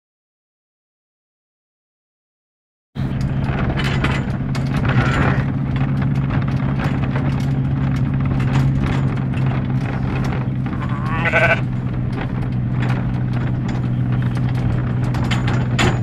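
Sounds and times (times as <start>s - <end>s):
road noise: 3.0s - 16.0s
small rattles and knocks: 3.0s - 16.0s
vehicle engine drone: 3.0s - 16.0s.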